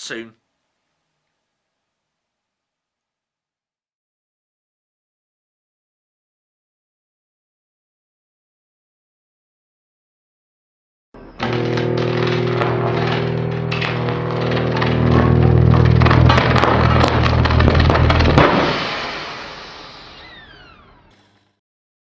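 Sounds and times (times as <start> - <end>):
held low tones: 11.2 - 18.7
sharp crackles: 11.2 - 21.5
falling whistle-like sweeps: 18.7 - 21.1.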